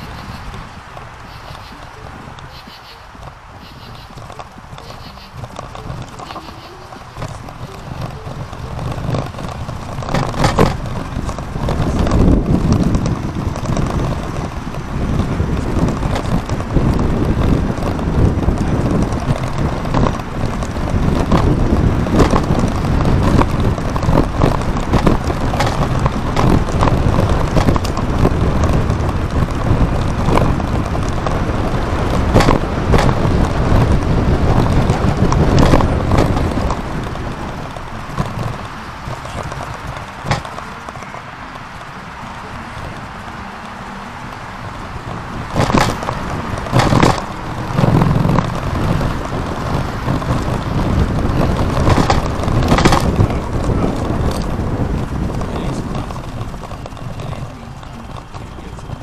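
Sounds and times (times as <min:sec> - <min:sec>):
sharp clicks and rattles: 0:00.0 - 0:59.0
tyre noise on road: 0:00.0 - 0:59.0
wind rushing over microphone: 0:00.0 - 0:59.0.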